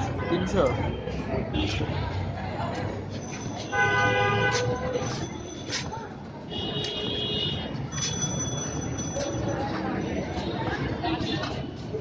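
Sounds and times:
street background noise: 0:00.0 - 0:12.0
car horn blasts: 0:03.7 - 0:04.7.

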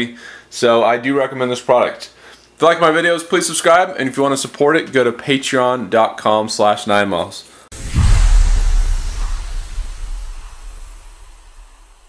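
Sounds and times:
deep rumbling boom with whoosh: 0:07.7 - 0:12.0.

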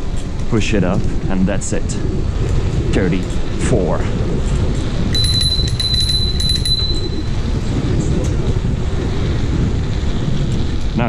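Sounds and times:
road noise: 0:00.0 - 0:11.0
wind rumble on microphone: 0:00.0 - 0:11.0
high-pitched whine: 0:05.0 - 0:08.5.

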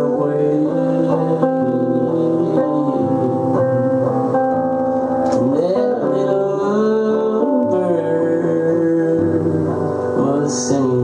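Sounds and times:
strummed blues guitar: 0:00.0 - 0:11.0.

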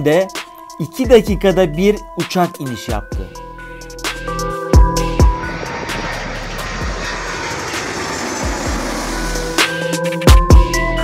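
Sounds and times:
jet airliner flying overhead: 0:03.6 - 0:11.0.

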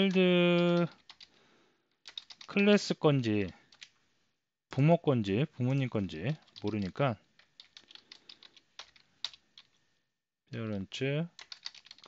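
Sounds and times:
computer keyboard typing: 0:00.0 - 0:04.0, 0:04.7 - 0:09.8, 0:11.4 - 0:12.0.

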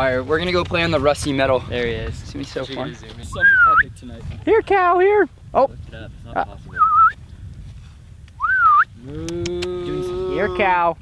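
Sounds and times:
person whistling: 0:03.4 - 0:03.8, 0:06.8 - 0:07.2, 0:08.4 - 0:08.9
cow mooing: 0:09.0 - 0:10.7.

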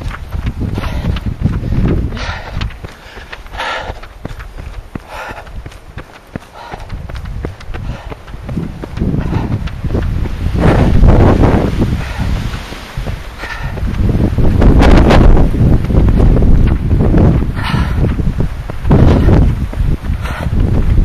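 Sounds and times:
wind buffeting microphone: 0:00.0 - 0:21.0
leaves rustling: 0:09.8 - 0:17.3.

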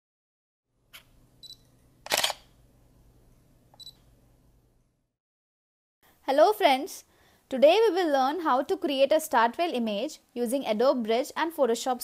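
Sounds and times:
camera click: 0:02.0 - 0:02.5
camera shutter firing: 0:02.0 - 0:02.5.

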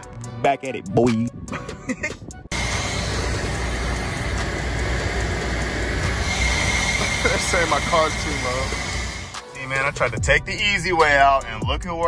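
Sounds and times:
car wash equipment rushing: 0:02.5 - 0:10.1
faint high whine: 0:02.5 - 0:10.1.

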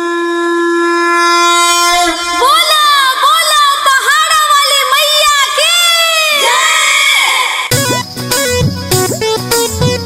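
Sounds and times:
conch shell blown: 0:00.0 - 0:03.6.

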